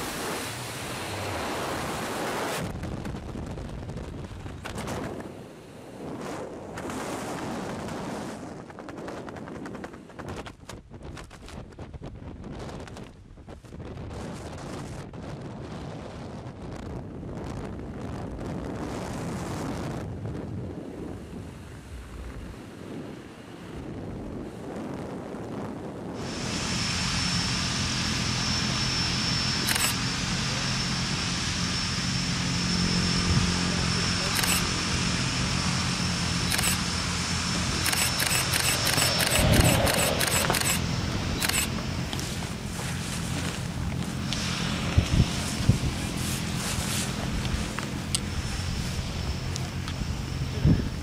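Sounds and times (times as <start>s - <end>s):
wind rushing over microphone: 0.0s - 51.0s
low hum: 26.2s - 51.0s
sharp clicks: 29.6s - 30.0s, 34.3s - 34.7s, 36.5s - 36.8s, 37.8s - 40.8s, 41.4s - 42.2s.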